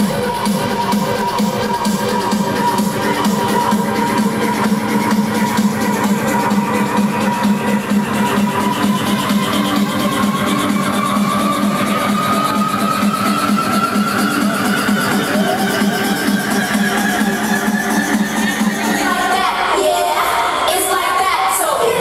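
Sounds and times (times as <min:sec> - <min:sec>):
rising synth tone: 0:00.0 - 0:18.8.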